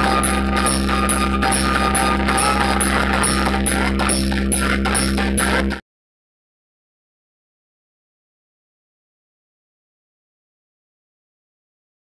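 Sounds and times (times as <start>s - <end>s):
loud electronic dance music: 0.0s - 5.8s.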